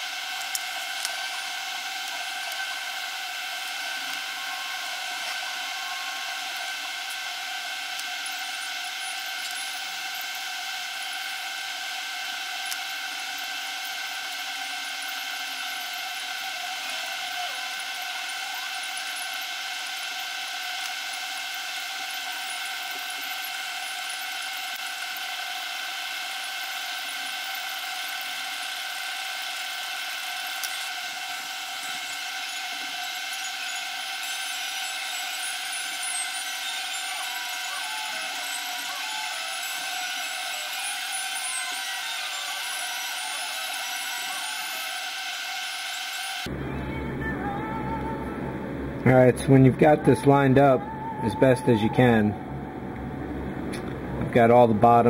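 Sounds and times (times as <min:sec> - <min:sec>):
steady high-pitched whine: 0:00.0 - 0:55.0.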